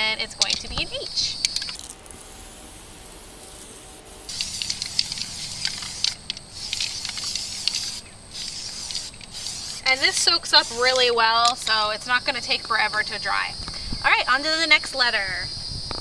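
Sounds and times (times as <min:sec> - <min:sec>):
aerosol spray can hissing: 0:01.6 - 0:11.2.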